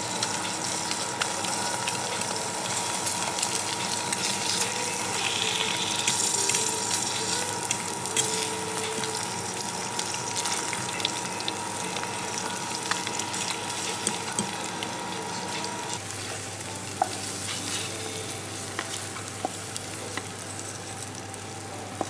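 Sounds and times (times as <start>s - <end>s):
eggs sizzling in a pan: 0.0s - 22.0s.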